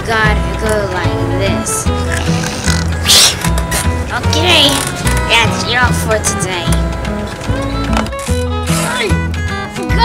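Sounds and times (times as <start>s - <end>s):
background music with bass line: 0.0s - 10.0s
person spitting into bucket: 2.1s - 3.9s.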